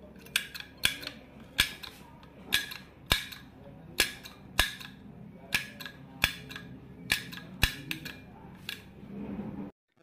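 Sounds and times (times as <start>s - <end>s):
sharp metallic clicks: 0.2s - 8.9s.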